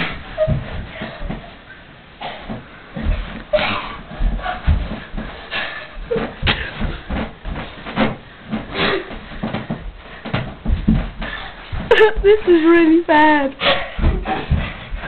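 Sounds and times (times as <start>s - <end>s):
thumps of bodies: 0.0s - 12.3s, 13.6s - 15.0s
hard breathing: 0.9s - 7.0s, 11.2s - 11.7s.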